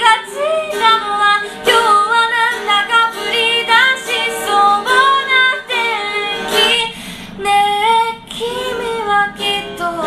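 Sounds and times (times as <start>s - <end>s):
acoustic guitar: 0.0s - 10.0s
woman singing a slow ballad: 0.0s - 10.0s.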